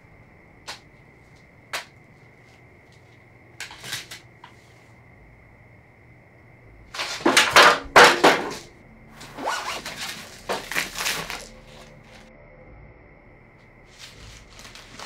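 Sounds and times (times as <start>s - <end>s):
rummaging rustling and scraping: 7.0s - 12.3s, 13.9s - 15.0s.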